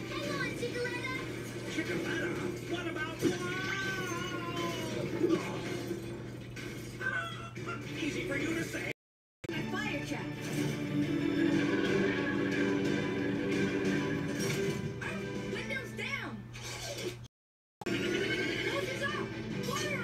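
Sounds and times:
cartoon character dialogue: 0:00.0 - 0:05.7, 0:15.0 - 0:16.5, 0:18.5 - 0:20.0
cartoon background music: 0:00.0 - 0:08.9, 0:09.5 - 0:17.2, 0:17.9 - 0:20.0.

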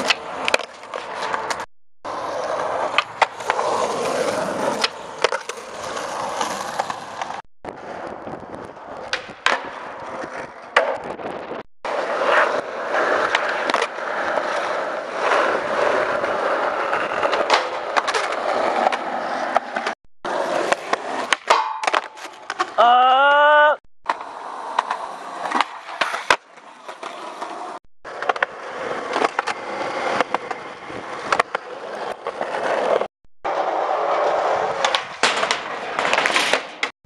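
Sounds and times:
skateboard wheels rolling on concrete: 0:00.0 - 0:22.8, 0:24.0 - 0:36.9
skateboard clacking on ground: 0:02.4 - 0:11.1, 0:13.0 - 0:22.8, 0:24.1 - 0:33.0, 0:34.6 - 0:36.9.

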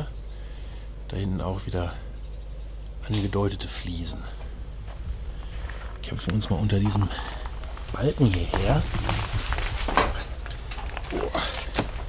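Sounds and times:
footsteps crunching over rubble: 0:04.0 - 0:12.0.

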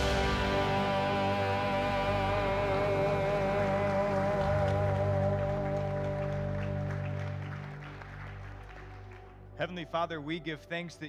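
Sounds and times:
live band holding a chord: 0:00.0 - 0:09.9
faint scattered claps: 0:02.8 - 0:09.5.

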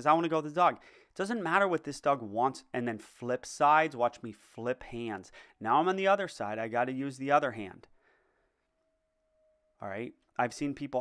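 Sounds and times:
man speaking: 0:00.0 - 0:07.9, 0:09.8 - 0:11.0
faint thin steady tone: 0:04.4 - 0:11.0.

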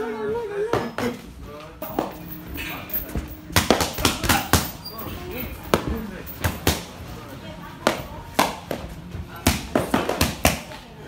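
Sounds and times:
boxing gloves smacking mitts: 0:03.5 - 0:04.8, 0:07.8 - 0:10.8.

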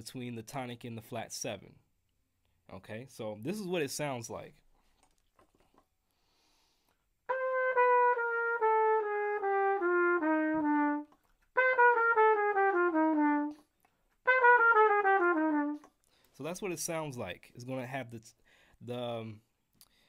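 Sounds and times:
trumpet playing descending runs: 0:07.3 - 0:15.9.

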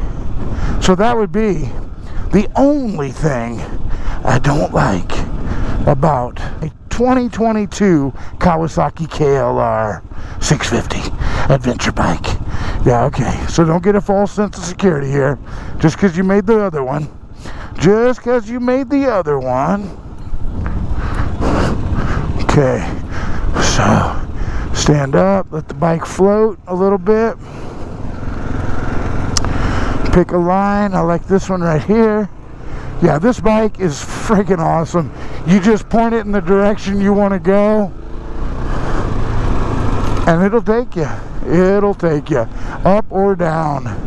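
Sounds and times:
motorcycle engine rumbling: 0:00.0 - 0:44.0
wind and tyre rushing: 0:00.0 - 0:44.0.

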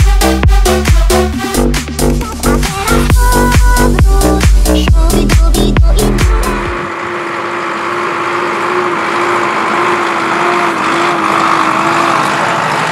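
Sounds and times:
electronic dance music: 0:00.0 - 0:12.7
tractor engine running: 0:00.0 - 0:12.9.

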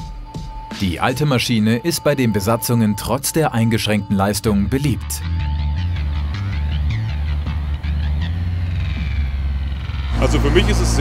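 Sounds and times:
turboprop engines droning: 0:05.6 - 0:11.0.

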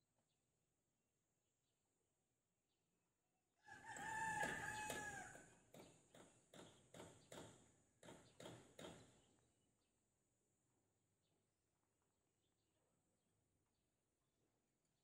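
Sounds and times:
faint rooster crowing: 0:03.6 - 0:05.6
short sharp knocks: 0:05.7 - 0:09.2.

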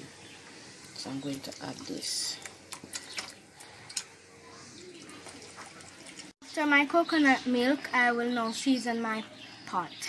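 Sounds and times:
liquid trickling into a pot: 0:01.0 - 0:06.4.

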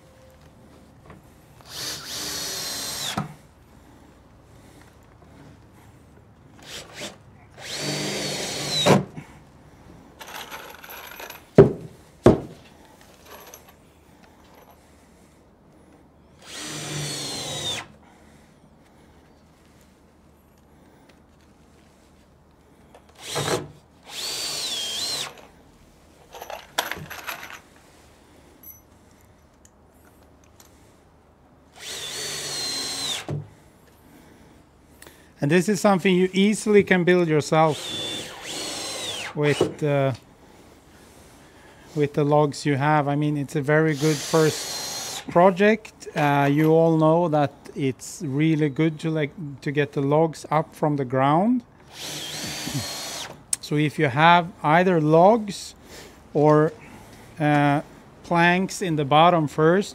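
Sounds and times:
power drill driving screws into wood: 0:01.6 - 0:03.4, 0:06.6 - 0:09.2, 0:16.4 - 0:18.0, 0:23.1 - 0:25.5, 0:31.7 - 0:33.4, 0:37.7 - 0:39.8, 0:43.9 - 0:45.3, 0:51.8 - 0:53.5
sharp knocks: 0:11.6 - 0:12.6.

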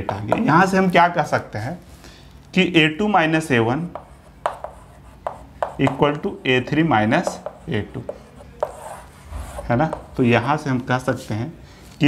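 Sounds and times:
marker writing on whiteboard: 0:00.0 - 0:00.7, 0:03.0 - 0:10.6
man speaking: 0:05.8 - 0:08.7, 0:09.6 - 0:11.6.

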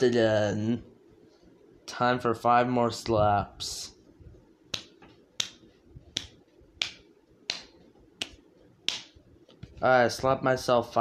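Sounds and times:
hand slapping face: 0:04.7 - 0:09.2.

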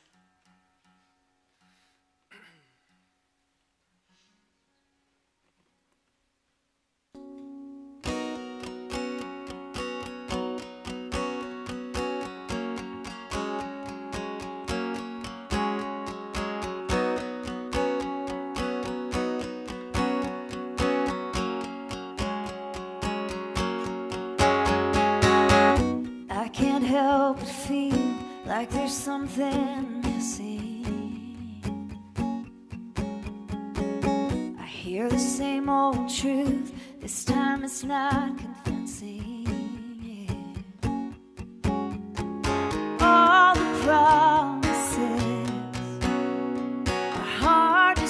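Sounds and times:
acoustic guitar strumming chords: 0:07.2 - 0:48.0
person singing: 0:25.2 - 0:31.9, 0:34.6 - 0:40.6, 0:42.8 - 0:46.2, 0:47.0 - 0:48.0.

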